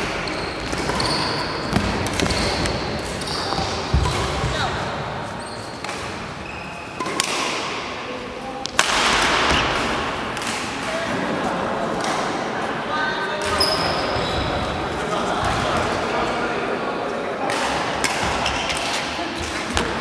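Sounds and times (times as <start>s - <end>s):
background chatter: 10.1s - 18.0s.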